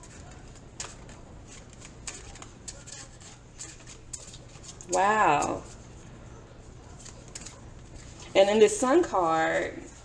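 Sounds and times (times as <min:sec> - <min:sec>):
cards being shuffled: 0:00.0 - 0:05.8, 0:06.9 - 0:08.3.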